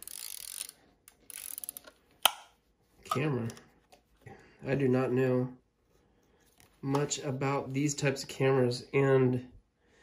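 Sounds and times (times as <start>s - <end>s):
camera crank ratchet clicking: 0.0s - 1.9s.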